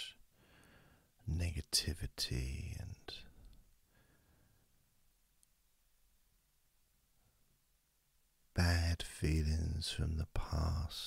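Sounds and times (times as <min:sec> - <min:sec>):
man speaking softly: 0:00.0 - 0:00.2, 0:01.2 - 0:03.5, 0:08.6 - 0:11.0.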